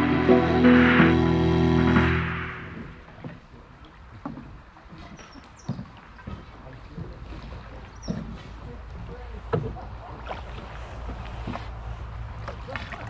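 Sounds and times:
music: 0.0 - 3.0
canoe drifting on river: 0.0 - 13.0.

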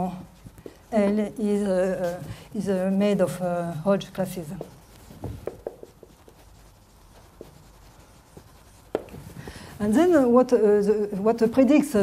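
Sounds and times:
marker writing on whiteboard: 0.0 - 10.5.

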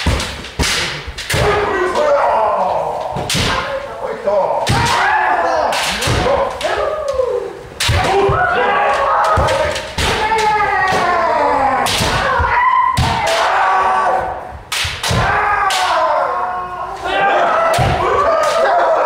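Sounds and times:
bamboo swords striking armour: 0.0 - 2.1, 4.6 - 6.5, 9.2 - 11.2, 11.8 - 13.7
fencers shouting: 0.0 - 19.0.

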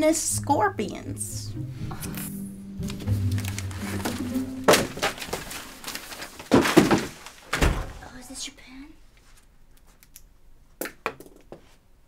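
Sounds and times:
background music with low notes: 0.0 - 5.8
papers falling: 2.8 - 8.0.

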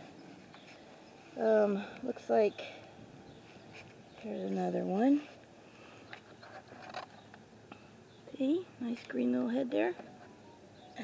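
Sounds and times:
quiet handling noise: 3.3 - 11.0.

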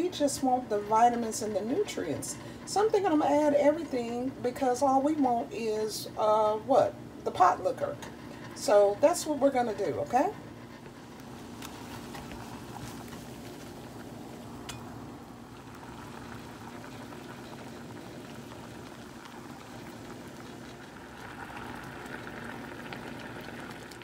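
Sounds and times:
pot boiling hard: 0.0 - 24.0.

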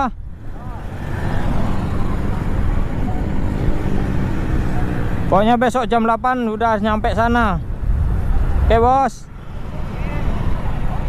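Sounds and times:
wind noise: 0.0 - 11.0.

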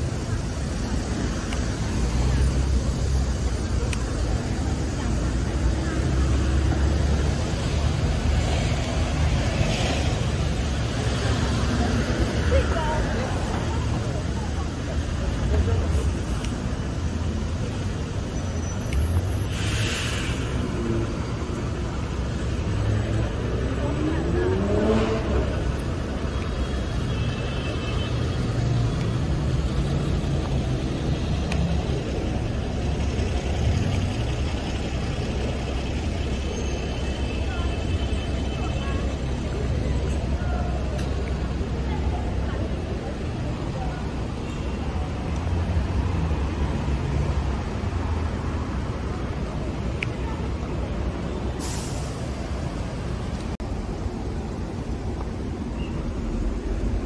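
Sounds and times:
cars passing: 0.0 - 57.0
road traffic rumble: 0.0 - 57.0.

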